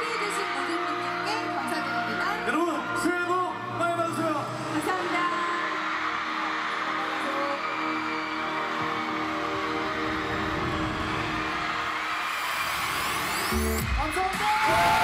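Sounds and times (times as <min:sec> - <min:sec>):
steady crowd noise: 0:00.0 - 0:15.0.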